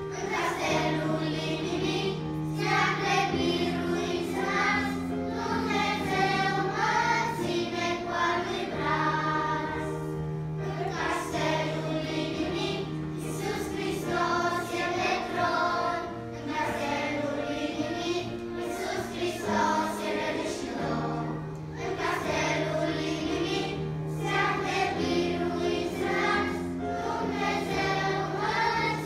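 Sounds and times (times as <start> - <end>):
children's choir singing a hymn: 0.0 - 29.0.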